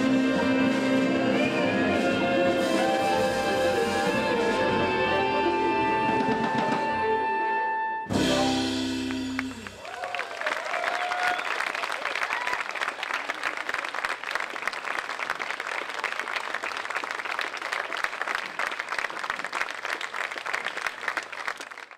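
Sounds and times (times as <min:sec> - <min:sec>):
audience applauding: 0:09.1 - 0:21.9.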